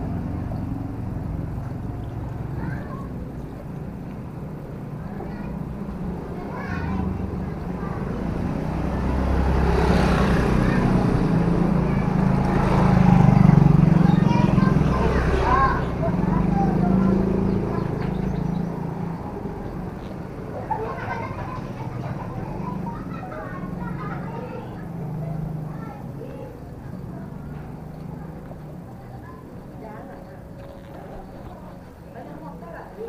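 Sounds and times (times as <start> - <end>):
motor scooters passing: 0.0 - 33.0.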